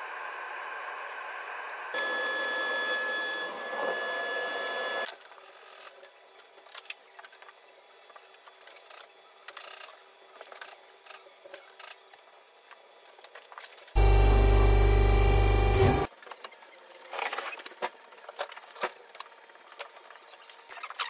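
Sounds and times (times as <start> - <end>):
woodworking machine whine: 1.8 - 5.1, 14.0 - 16.1.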